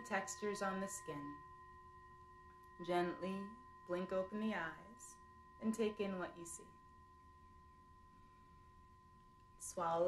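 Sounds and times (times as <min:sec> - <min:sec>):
singing bowl ringing: 0:00.0 - 0:10.0.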